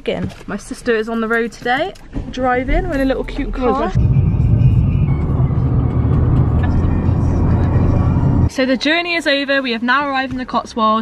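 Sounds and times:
road and engine rumble in car: 3.9 - 8.5.

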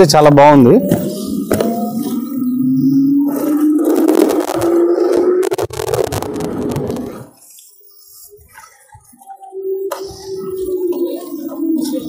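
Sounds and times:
electric scooter motor whining: 0.0 - 7.6, 8.2 - 12.0
road noise: 0.0 - 7.6
wind: 0.0 - 12.0.

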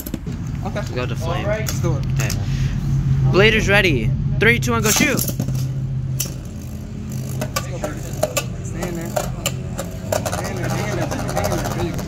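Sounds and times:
spinning tops whirring: 4.9 - 12.0.

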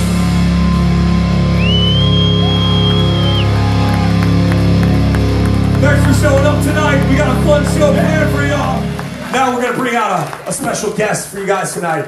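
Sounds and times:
heavy metal guitar drone: 0.0 - 9.8
high whistle-like tone: 1.5 - 3.6.

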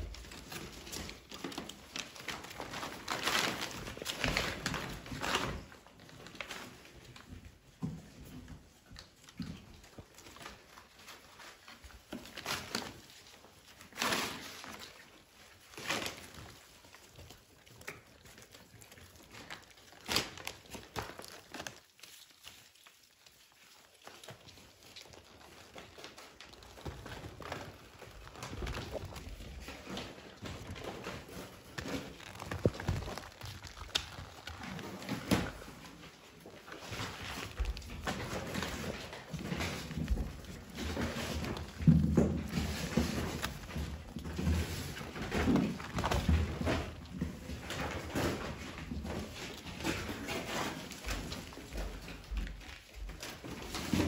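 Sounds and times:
packing paper crinkling: 0.0 - 7.3, 9.9 - 54.0.

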